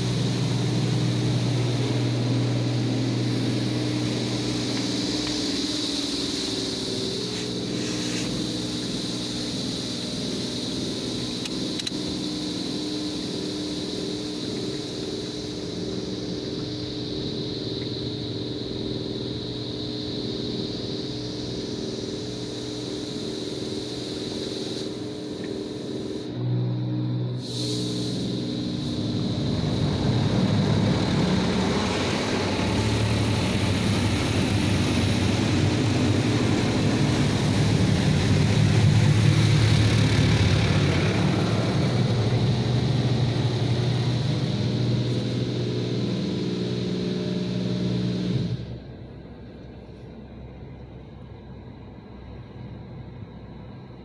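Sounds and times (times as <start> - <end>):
car wash machine hum: 0.0 - 53.9.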